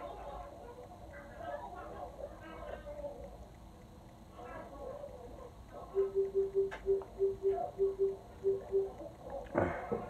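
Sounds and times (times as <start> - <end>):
short low beeps: 6.0 - 9.0.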